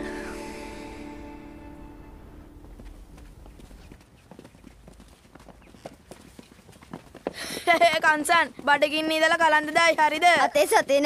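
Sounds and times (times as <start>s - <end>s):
bowed string music: 0.0s - 3.1s
footsteps and scuffs: 2.6s - 11.0s.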